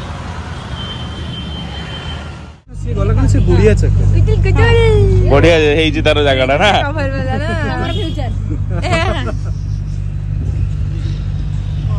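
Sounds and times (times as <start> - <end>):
passing traffic rumble: 0.0 - 11.9.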